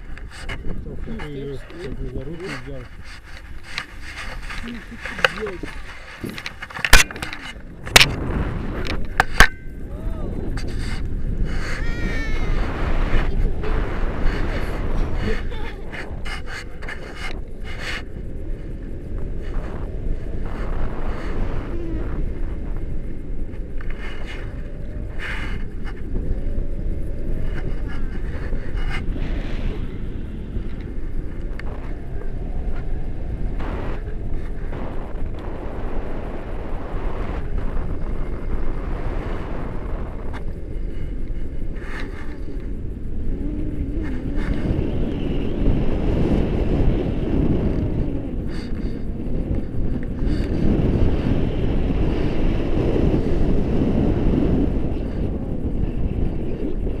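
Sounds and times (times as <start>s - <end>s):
wind noise on microphone: 0.0s - 57.0s.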